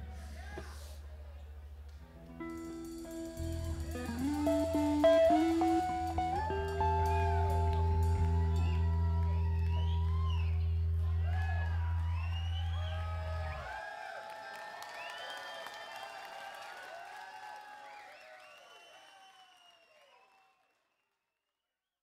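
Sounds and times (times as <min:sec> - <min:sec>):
rock band chord ringing: 0:02.4 - 0:09.6
audience cheering and whooping: 0:04.0 - 0:18.4.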